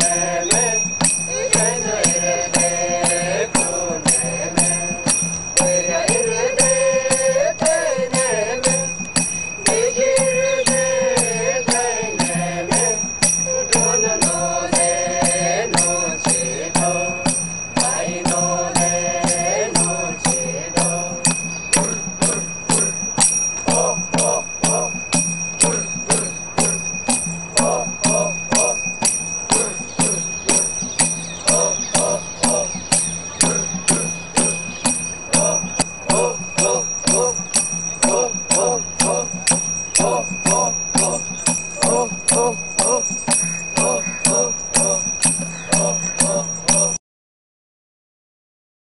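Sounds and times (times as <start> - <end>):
bell-like ringing: 0.0 - 47.0
metallic beat: 0.0 - 47.0
voices chanting: 0.0 - 47.0.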